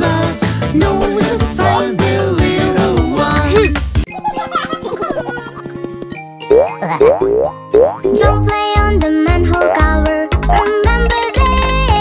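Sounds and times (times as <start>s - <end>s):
children's cartoon music: 0.0s - 12.0s
rising boing sound effects: 6.4s - 8.3s.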